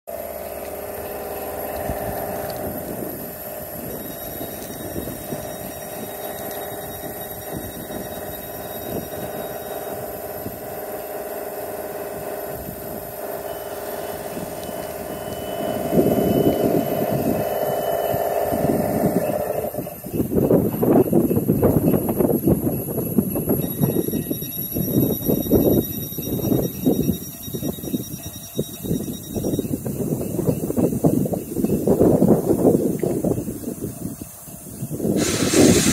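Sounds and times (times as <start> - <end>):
train humming and moving off: 0.1 - 30.8, 31.5 - 35.9.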